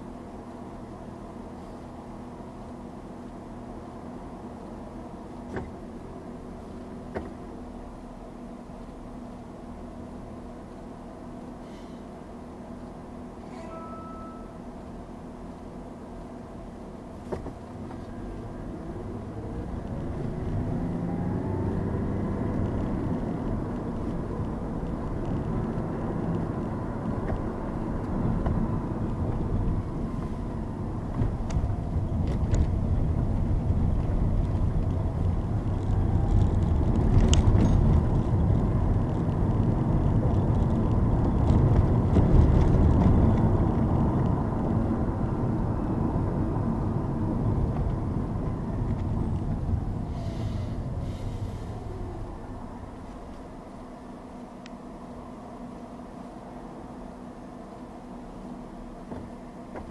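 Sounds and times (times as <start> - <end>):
road noise inside car: 0.0 - 59.9
car engine revving: 17.8 - 53.4.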